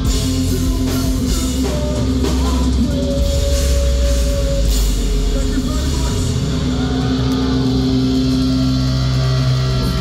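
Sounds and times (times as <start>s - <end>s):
rock band holding a ringing chord: 0.0s - 10.0s.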